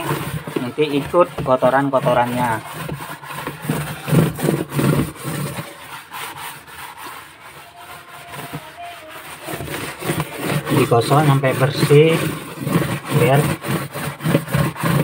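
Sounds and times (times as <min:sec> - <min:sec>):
scouring pad scrubbing plastic bucket: 0:00.0 - 0:15.0.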